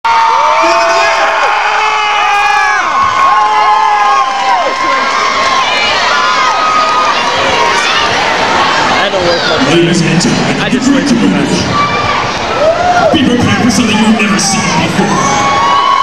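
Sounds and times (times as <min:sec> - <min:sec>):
crowd cheering and screaming: 0:00.0 - 0:16.0.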